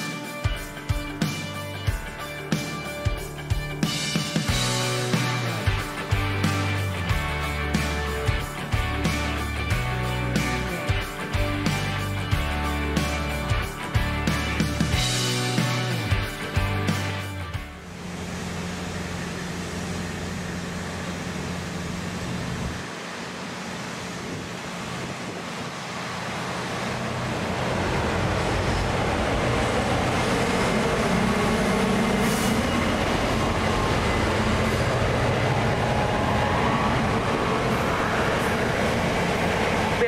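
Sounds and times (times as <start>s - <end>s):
diesel locomotive engine drone: 0.0s - 40.0s
train wagons rumbling on rails: 20.6s - 40.0s.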